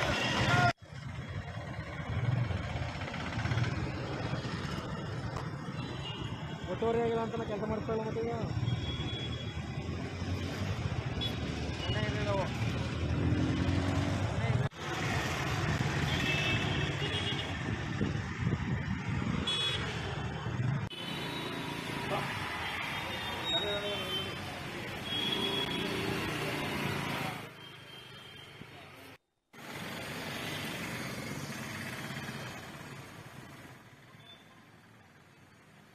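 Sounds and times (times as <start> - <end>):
road traffic: 0.0 - 35.9.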